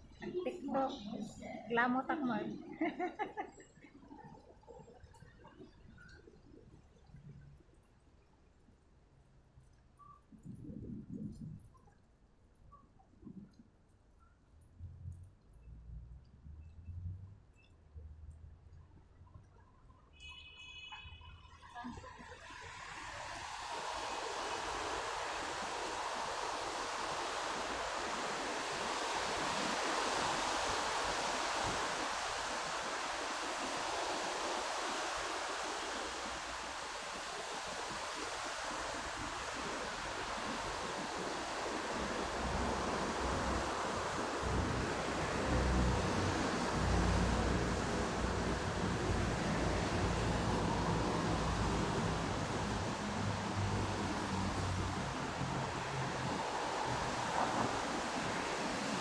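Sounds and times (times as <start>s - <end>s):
heavy rain falling: 22.6s - 59.0s.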